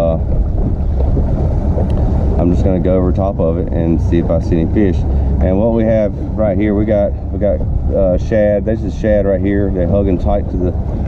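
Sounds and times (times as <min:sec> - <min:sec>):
outboard motor idling: 0:00.0 - 0:11.0
wind rumbling on microphone: 0:00.0 - 0:11.0.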